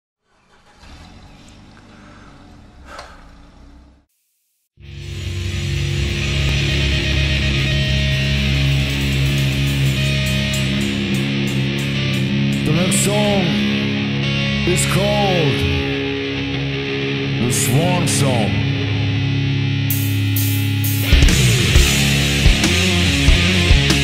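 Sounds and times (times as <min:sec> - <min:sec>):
heavy metal guitar drone: 0:04.8 - 0:24.0
loud sustained guitar chord: 0:04.8 - 0:24.0.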